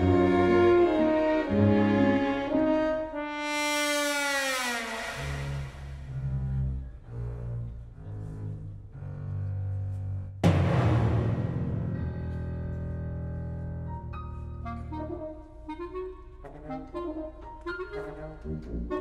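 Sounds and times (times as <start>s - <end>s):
orchestra playing comic film music: 0.0s - 19.0s
loud orchestral hit: 10.4s - 13.4s.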